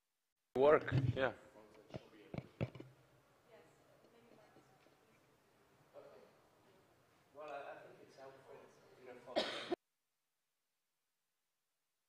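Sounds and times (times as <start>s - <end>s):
loud throat clearing: 9.3s - 9.8s.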